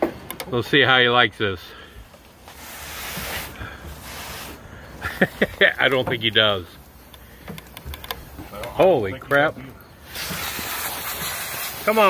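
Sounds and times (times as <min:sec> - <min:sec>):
hose nozzle spraying water: 0:02.4 - 0:08.7, 0:10.0 - 0:12.0.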